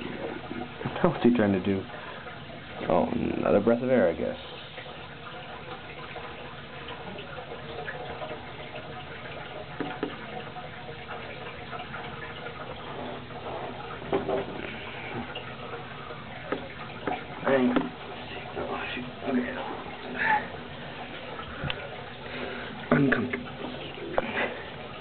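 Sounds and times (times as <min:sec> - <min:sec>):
water trickling and bubbling: 0:00.0 - 0:25.0.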